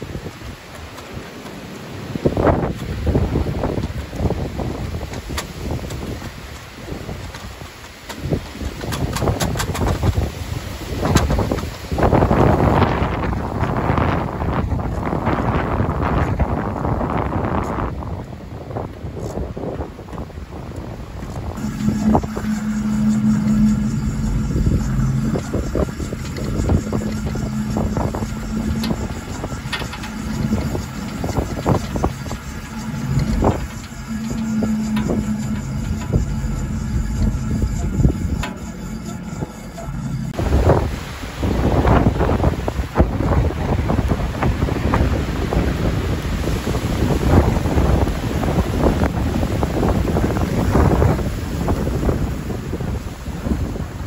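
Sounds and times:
wind buffeting microphone: 0.0s - 54.0s
low hum: 20.1s - 54.0s.

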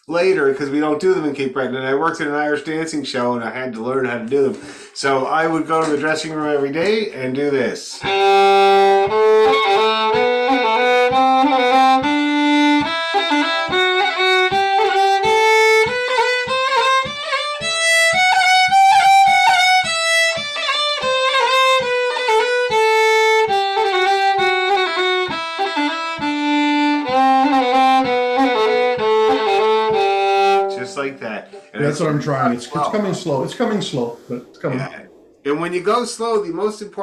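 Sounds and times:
solo fiddle playing scale: 8.0s - 34.5s.

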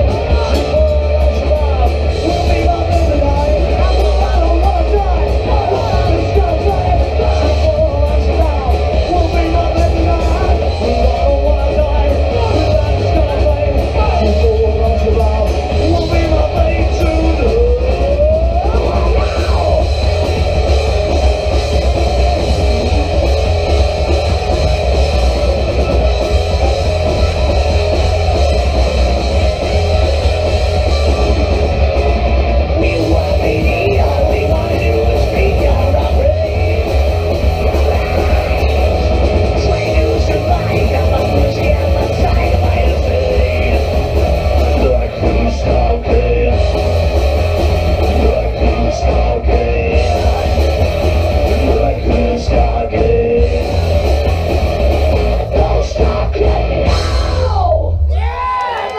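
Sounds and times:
live punk rock band: 0.0s - 58.9s.

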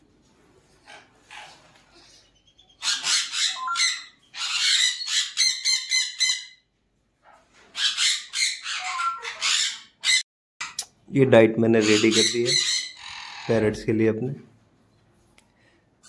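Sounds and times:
parrots calling harshly: 0.8s - 6.7s, 7.7s - 10.8s, 11.8s - 13.8s.

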